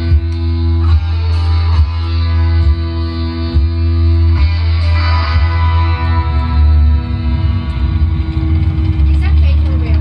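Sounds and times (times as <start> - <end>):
electric guitar drone with feedback: 0.0 - 10.0.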